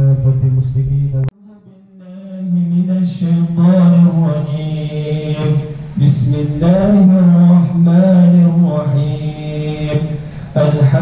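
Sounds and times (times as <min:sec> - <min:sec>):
man chanting into a microphone: 0:00.0 - 0:11.0.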